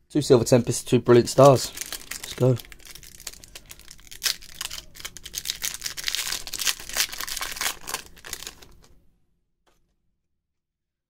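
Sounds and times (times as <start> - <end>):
foil wrapper tearing and crinkling: 1.3 - 8.9.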